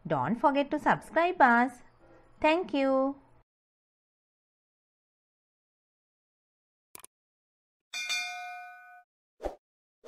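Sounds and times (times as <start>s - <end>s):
bell-like ding: 8.0s - 9.1s.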